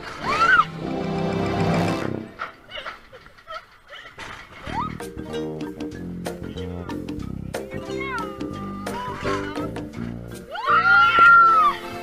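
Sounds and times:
roller coaster rider screaming: 0:00.0 - 0:00.8, 0:10.5 - 0:11.8
background music with a beat: 0:05.0 - 0:12.0.

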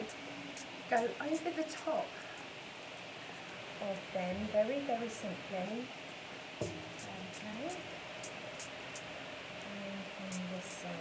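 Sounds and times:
spray bottle hissing: 0:10.3 - 0:11.0.

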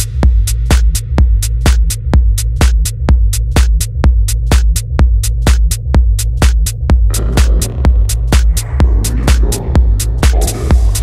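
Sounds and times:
deep bass: 0:00.0 - 0:11.0
hi-hats: 0:00.0 - 0:11.0
kick drum: 0:00.0 - 0:11.0.

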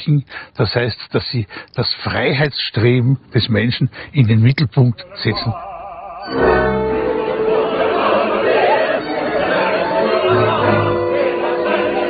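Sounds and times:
opera chorus and soloists singing: 0:05.0 - 0:12.0.

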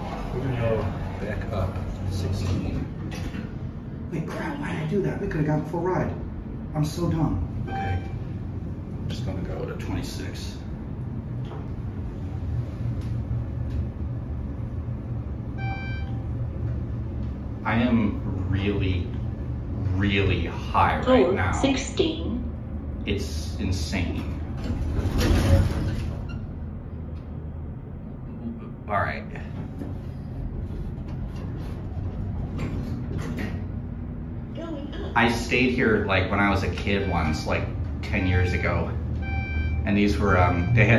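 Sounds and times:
elevator ride rumble: 0:00.0 - 0:40.9
short electronic beep: 0:07.7 - 0:08.2, 0:15.5 - 0:16.4, 0:38.2 - 0:40.9
elevator doors sliding closed: 0:11.3 - 0:17.6, 0:24.0 - 0:26.8, 0:36.5 - 0:40.9.

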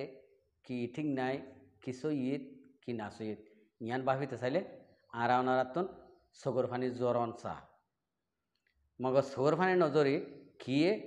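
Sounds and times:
man speaking into microphone: 0:00.7 - 0:07.7, 0:09.0 - 0:11.0.

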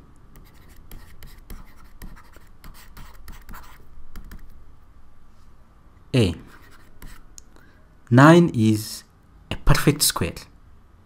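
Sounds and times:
stylus scratching on surface: 0:00.4 - 0:04.6, 0:06.4 - 0:07.2.

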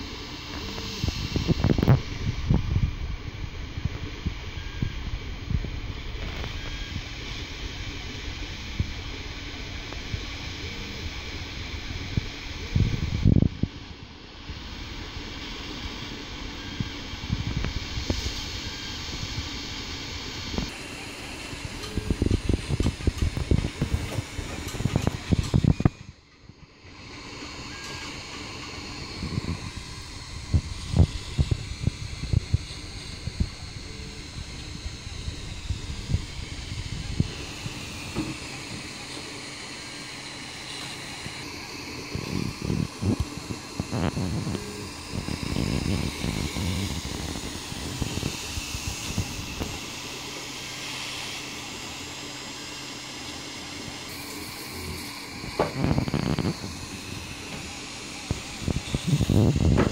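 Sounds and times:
fan hiss: 0:00.0 - 0:59.9
stepper motors buzzing and thumping: 0:00.1 - 0:59.9.

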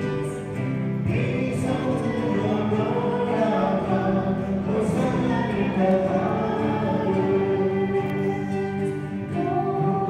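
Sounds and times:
congregation and choir singing hymn: 0:00.0 - 0:10.0.

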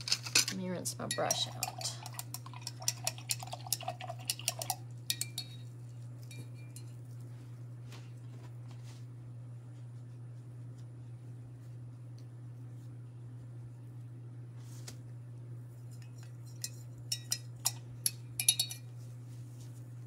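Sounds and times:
paintbrush rattling in cup: 0:00.0 - 0:05.6, 0:16.0 - 0:18.8
steady low hum: 0:00.0 - 0:20.0.

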